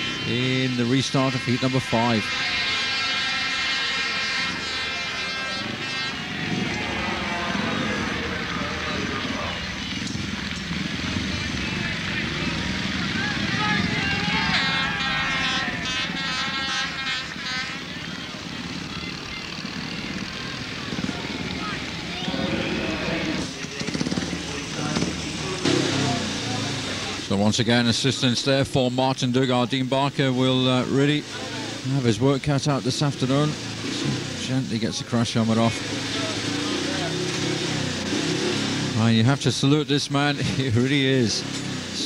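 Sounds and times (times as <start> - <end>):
public address voice: 0.0 - 3.2
motorcycle engine running: 0.0 - 39.4, 40.1 - 42.0
stadium crowd noise: 0.0 - 42.0.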